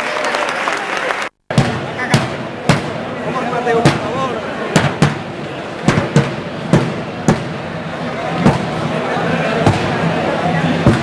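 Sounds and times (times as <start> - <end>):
murmur of crowd voices: 0.0 - 11.0
sharp knocks: 1.5 - 3.1, 3.7 - 7.8, 8.4 - 8.8, 9.6 - 10.0.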